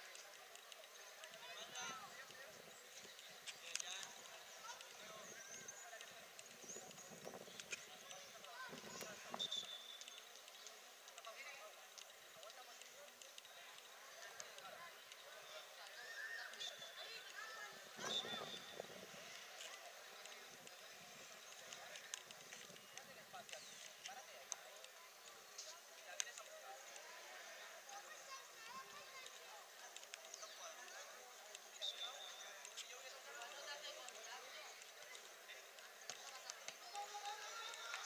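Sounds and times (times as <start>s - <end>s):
faint distant voices: 0.0s - 38.0s.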